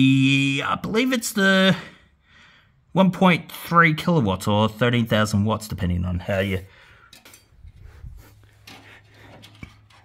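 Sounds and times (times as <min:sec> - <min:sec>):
light handling clicks and rubs: 0:07.2 - 0:10.0.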